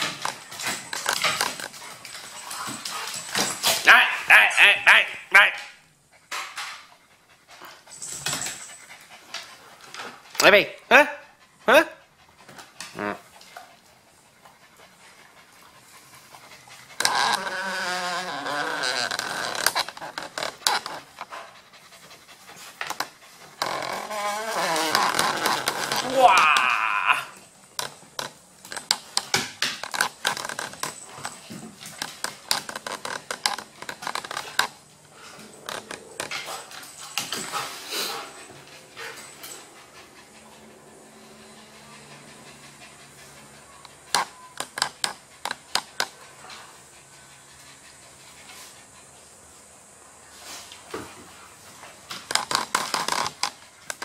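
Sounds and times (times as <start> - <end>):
dogs play growling: 0.0 - 3.9, 6.2 - 10.4, 11.4 - 49.5, 50.4 - 54.0.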